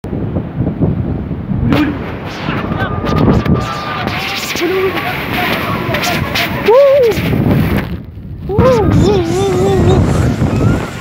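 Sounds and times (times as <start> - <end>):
waves rumbling on rocky shore: 0.1 - 11.0
wave crashing into rocks: 1.7 - 8.1.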